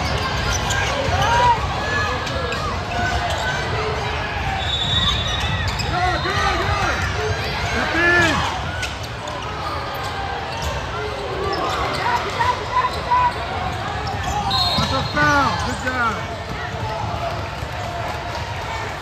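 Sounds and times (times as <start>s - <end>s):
sneakers squeaking on court: 0.0s - 1.2s, 4.6s - 6.4s, 8.2s - 17.6s
basketball bouncing: 16.0s - 18.5s.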